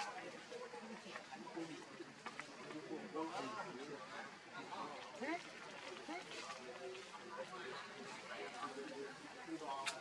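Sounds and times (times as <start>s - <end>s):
faint overlapping voices: 0.0s - 10.0s.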